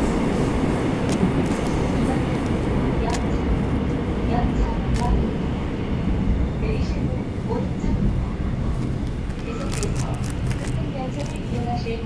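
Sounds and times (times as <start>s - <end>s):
subway train wheels rumbling: 0.0s - 12.0s
faint voices: 6.6s - 12.0s.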